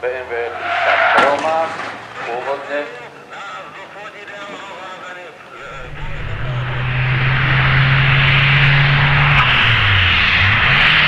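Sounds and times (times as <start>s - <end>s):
faint low engine hum: 3.0s - 9.9s.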